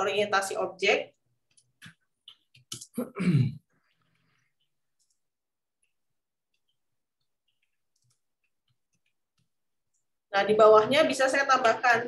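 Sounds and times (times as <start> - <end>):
person clearing throat: 2.8 - 3.7
keyboard clicks: 7.5 - 9.5.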